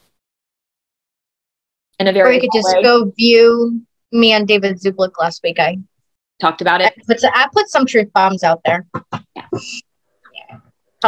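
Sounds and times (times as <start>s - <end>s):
woman murmuring: 2.1s - 3.0s
woman saying yeah: 2.1s - 3.0s.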